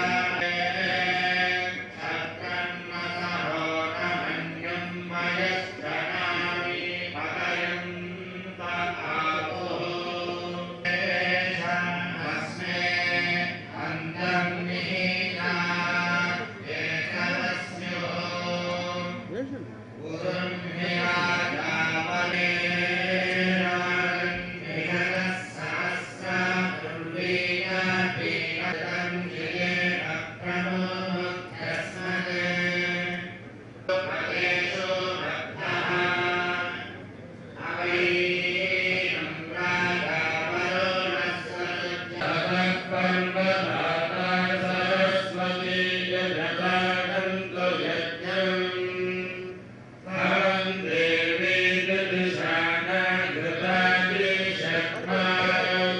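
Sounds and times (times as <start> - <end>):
men chanting into microphones: 0.0 - 37.0, 37.6 - 55.9.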